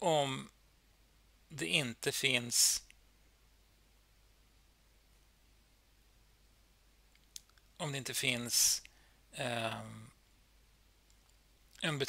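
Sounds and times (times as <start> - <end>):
man lecturing: 1.5 - 2.8, 7.8 - 8.8, 9.4 - 10.0, 11.8 - 12.0.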